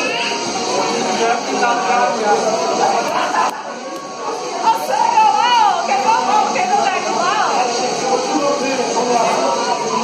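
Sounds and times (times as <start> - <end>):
group chatter: 0.0 - 10.0
music playing: 0.0 - 10.0.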